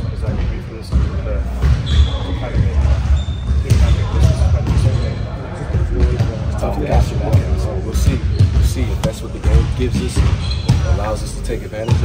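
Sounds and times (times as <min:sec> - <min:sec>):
basketballs bouncing: 0:00.0 - 0:12.0
man speaking: 0:06.5 - 0:10.2, 0:10.8 - 0:12.0.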